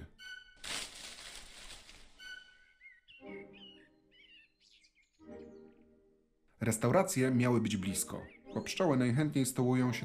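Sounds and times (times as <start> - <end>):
soft soundtrack music: 0.0 - 10.0
wavering bird-like chirps: 2.2 - 5.8.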